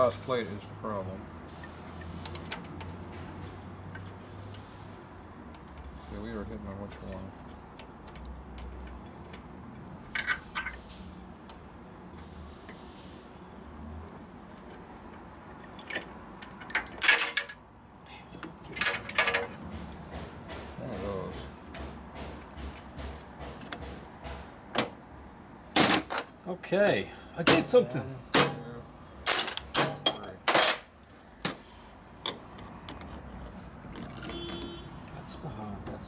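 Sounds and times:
metal clutch plates clinking and scraping: 10.1s - 10.9s, 15.6s - 17.6s, 18.4s - 21.4s, 29.2s - 30.9s, 32.2s - 34.8s.

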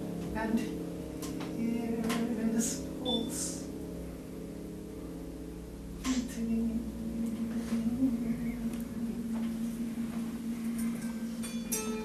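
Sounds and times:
held piano chord: 0.0s - 12.0s
harp notes ringing: 10.4s - 12.0s.

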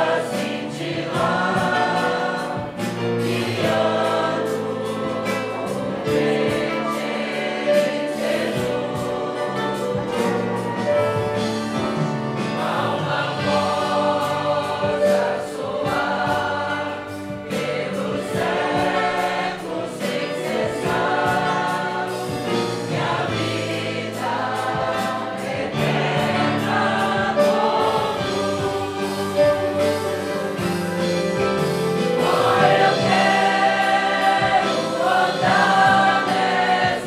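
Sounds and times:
congregation singing a hymn: 0.0s - 37.0s.

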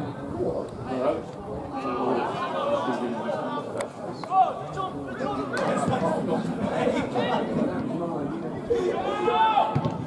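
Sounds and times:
spectators chattering: 0.0s - 10.0s
footballers shouting: 8.6s - 10.0s.

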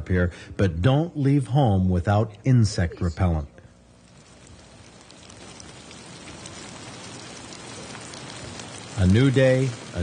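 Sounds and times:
rain falling on lake water: 3.8s - 10.0s.

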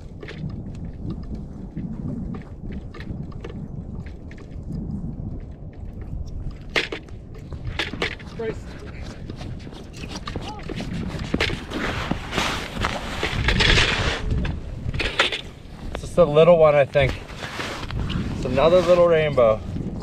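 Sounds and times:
scattered knocks and clicks: 0.0s - 11.7s
footsteps crunching on snowy ice: 7.1s - 14.3s, 16.8s - 20.0s.

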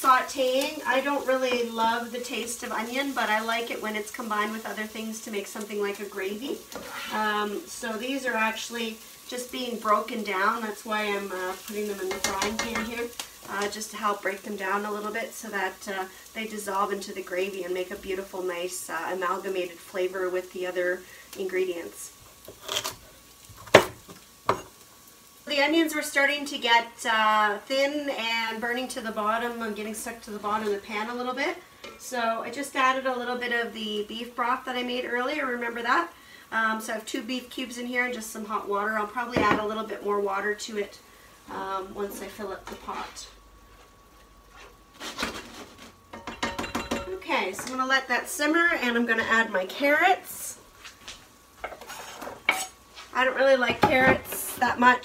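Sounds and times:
utensil scraping cutting board: 44.5s - 45.8s, 51.6s - 52.7s.

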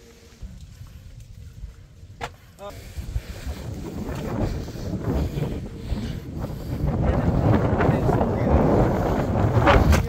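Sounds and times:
wind buffeting microphone: 0.4s - 10.0s.

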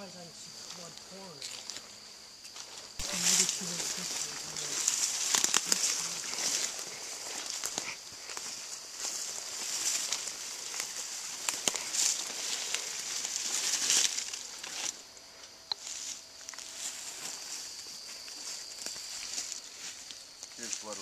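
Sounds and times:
footsteps in dry leaves: 0.8s - 15.1s, 15.8s - 21.0s.

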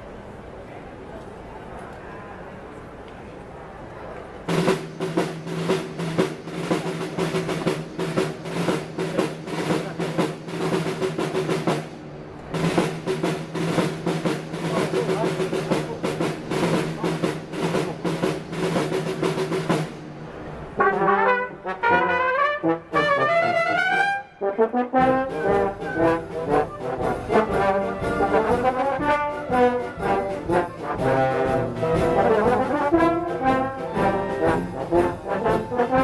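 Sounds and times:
drum rhythm: 4.5s - 24.0s, 24.6s - 36.0s
wind band playing a march: 4.5s - 36.0s.

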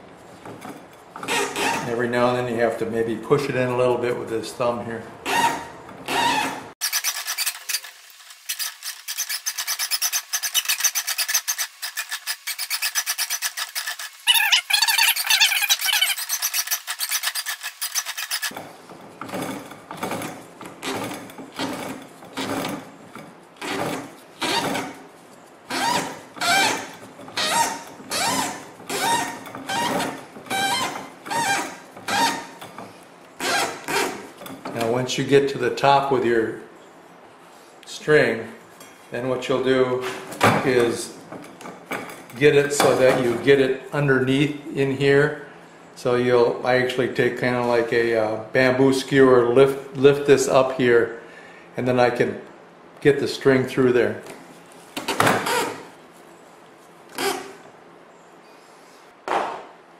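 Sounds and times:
string rasping while wound: 0.7s - 2.0s, 5.2s - 18.6s, 19.3s - 34.5s.

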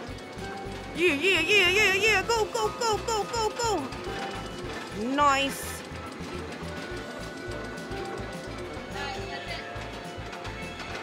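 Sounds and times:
arcade game music: 0.0s - 11.0s
din of arcade machines: 0.0s - 11.0s.

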